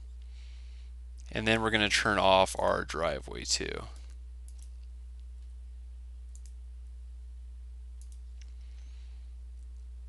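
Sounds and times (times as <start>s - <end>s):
low electrical hum: 0.0s - 10.0s
computer mouse clicks: 4.0s - 5.5s, 6.3s - 6.6s, 8.0s - 8.6s.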